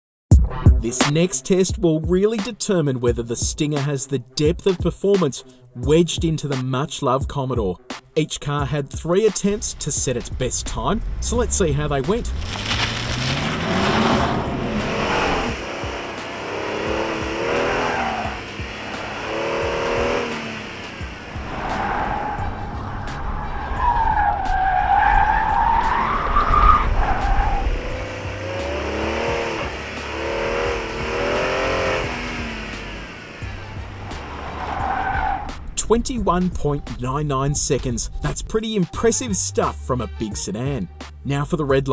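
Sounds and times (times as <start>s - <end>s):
car engine revving: 9.2s - 38.5s
tyres squealing: 10.9s - 20.6s, 21.2s - 36.0s.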